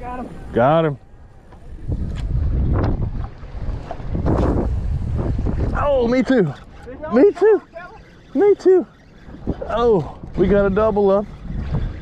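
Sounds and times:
wind buffeting microphone: 1.2 - 12.0.

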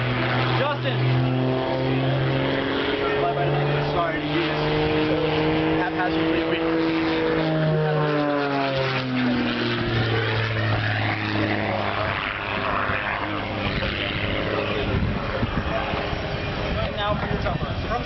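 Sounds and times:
propeller airplane droning: 0.0 - 18.0.

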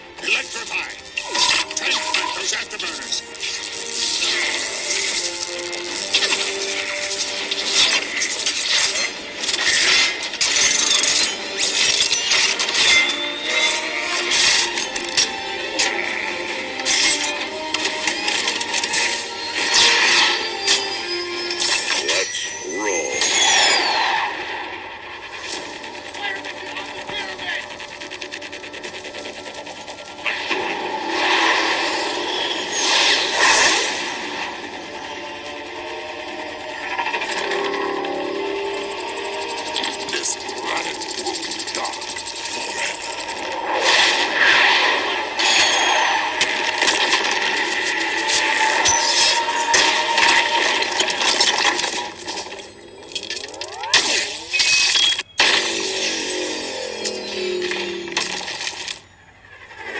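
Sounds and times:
film score music: 0.0 - 59.9
mechanical whirs: 0.0 - 59.9.

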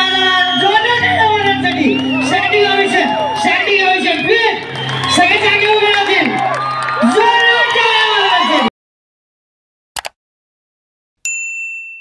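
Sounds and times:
notification bell ding: 11.3 - 12.0.

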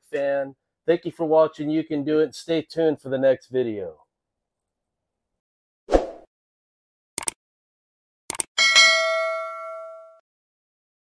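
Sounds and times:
notification bell ding: 8.6 - 10.2.

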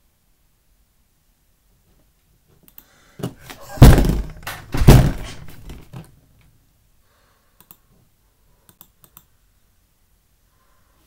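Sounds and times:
faint clicks: 2.6 - 3.0, 7.6 - 8.0, 8.6 - 9.4
heavy thumps: 3.2 - 6.1.

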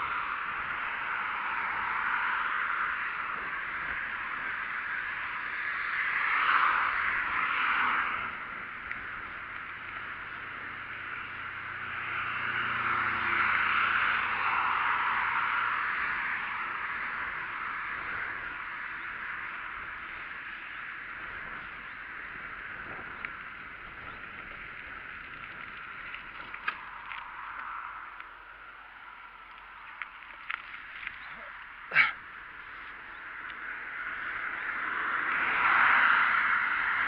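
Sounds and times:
bicycle riding and wind noise: 0.0 - 37.0
cars passing: 0.0 - 37.0.

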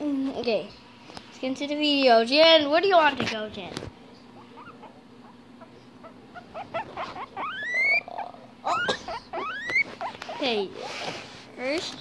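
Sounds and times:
guinea pig wheeking: 4.3 - 11.2.

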